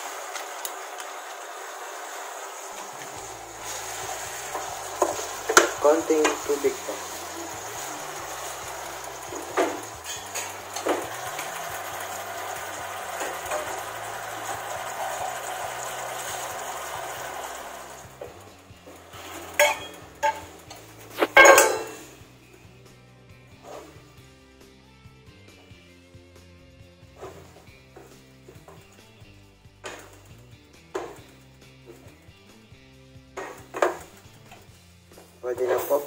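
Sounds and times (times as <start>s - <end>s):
greens sizzling in a pan: 0.0s - 22.4s, 27.1s - 36.0s
soft background music: 2.9s - 36.0s
wooden spatula knocking on pan: 4.5s - 6.5s.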